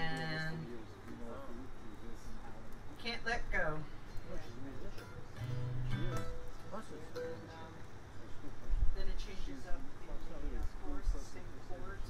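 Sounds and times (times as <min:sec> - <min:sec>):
acoustic guitar: 0:04.0 - 0:08.4.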